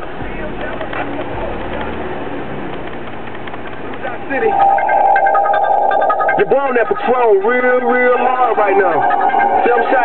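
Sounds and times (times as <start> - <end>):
rap song on car stereo: 6.4 - 10.0.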